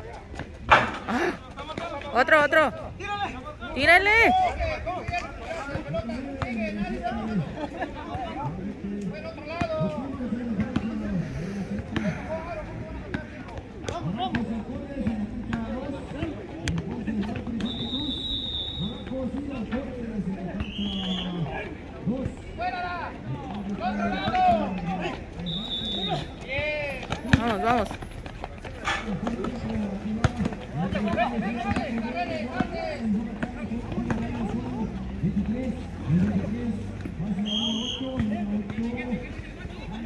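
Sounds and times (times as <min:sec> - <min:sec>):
men calling out and talking: 0:00.0 - 0:40.0
basketball bouncing on asphalt: 0:09.4 - 0:11.0, 0:26.3 - 0:34.6, 0:38.1 - 0:39.1.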